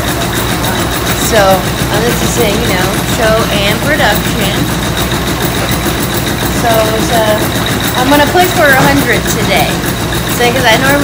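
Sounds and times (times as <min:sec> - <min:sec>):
pulleys and gearing rattling: 0:00.0 - 0:11.0
millstones rumbling: 0:00.5 - 0:10.9.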